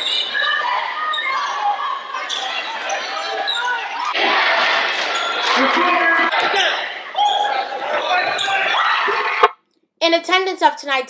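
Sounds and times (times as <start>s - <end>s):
crowd hubbub: 0.0s - 9.6s.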